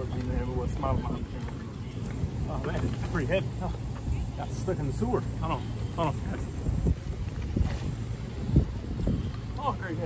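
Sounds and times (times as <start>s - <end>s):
loaded cart rumbling over asphalt: 0.0s - 10.0s
wind rumbling on microphone: 0.0s - 10.0s.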